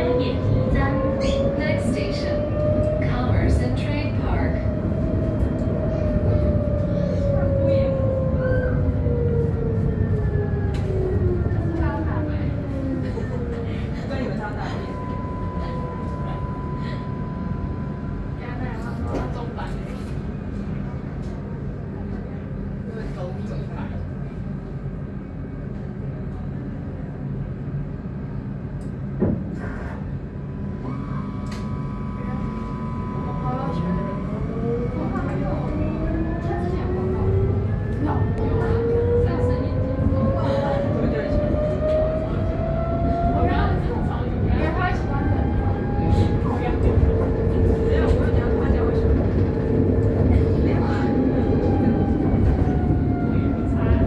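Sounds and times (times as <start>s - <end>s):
tram rumble with motor whine: 0.0s - 54.0s.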